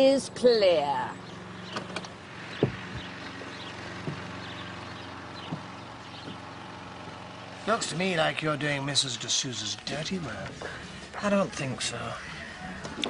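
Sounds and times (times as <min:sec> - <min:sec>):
sports car engine idling: 0:00.0 - 0:13.0.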